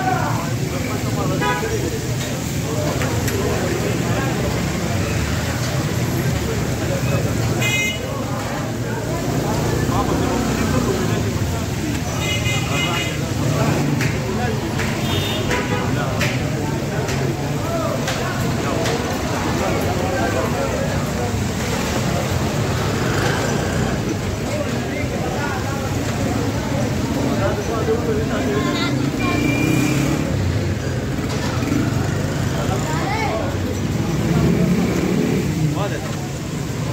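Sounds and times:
steady traffic hum: 0.0s - 36.9s.

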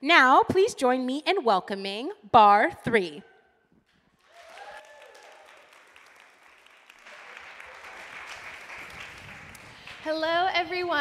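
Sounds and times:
audience applauding: 4.1s - 10.1s.

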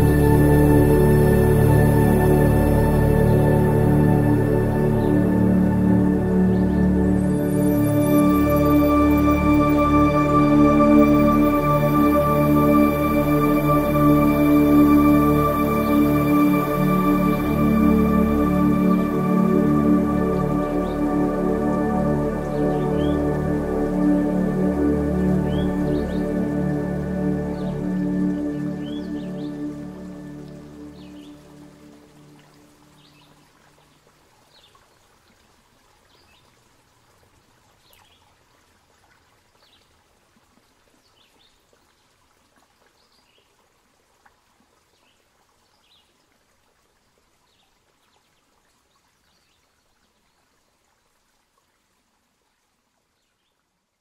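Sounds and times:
ambient music with layered tones: 0.0s - 33.9s
soft steady hiss: 0.0s - 54.0s.

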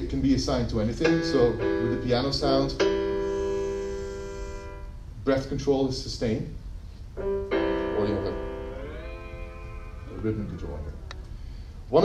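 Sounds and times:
held piano note: 0.8s - 5.0s, 7.2s - 12.0s.

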